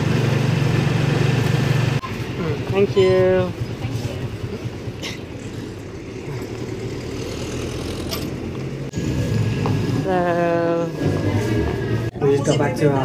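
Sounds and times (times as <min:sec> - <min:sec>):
small engine running: 0:06.3 - 0:08.4.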